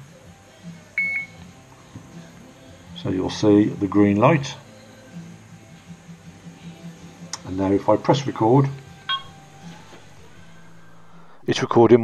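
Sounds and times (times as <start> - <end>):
short electronic beep: 9.1 - 9.4.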